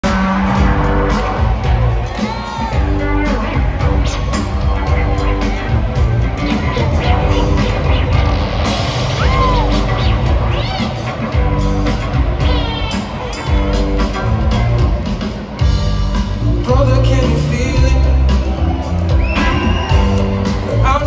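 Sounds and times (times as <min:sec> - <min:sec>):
live rock band playing: 0:00.0 - 0:21.0
crowd whoops or whistles: 0:09.1 - 0:09.9, 0:18.4 - 0:20.8.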